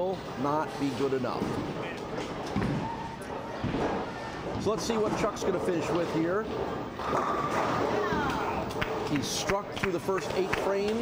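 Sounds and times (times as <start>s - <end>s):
voices in a hall: 0.1s - 11.0s
people clapping: 8.2s - 11.0s.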